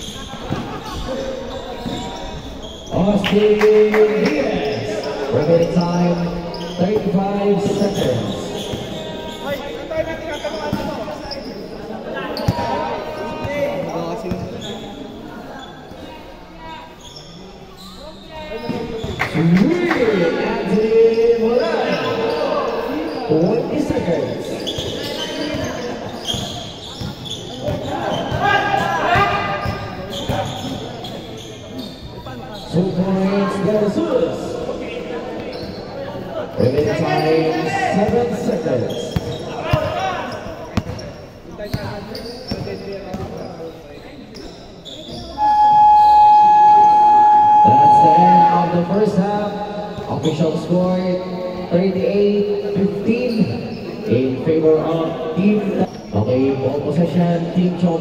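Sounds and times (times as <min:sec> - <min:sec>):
basketball bouncing on court: 0:39.1 - 0:40.0, 0:40.8 - 0:43.4.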